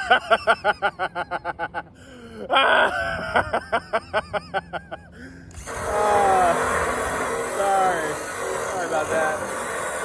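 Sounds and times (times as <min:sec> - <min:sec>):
cordless drill running under load: 0:05.5 - 0:10.0.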